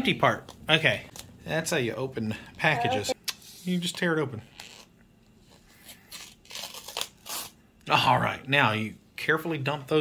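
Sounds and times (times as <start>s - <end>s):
paper packet tearing: 6.0s - 7.6s.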